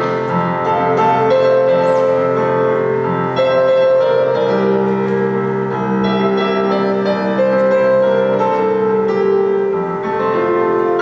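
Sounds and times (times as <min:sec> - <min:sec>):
keyboard playing held chords: 0:00.0 - 0:11.0.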